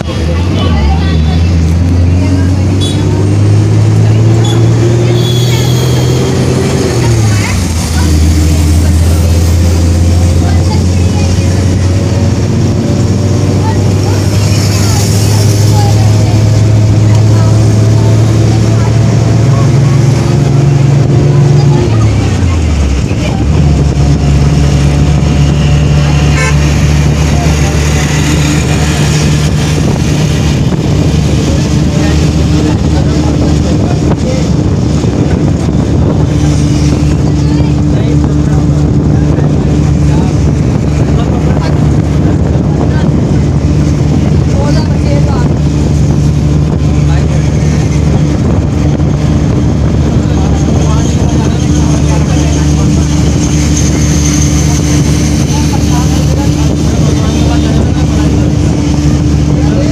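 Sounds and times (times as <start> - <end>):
vehicle engine running: 0.0 - 59.9.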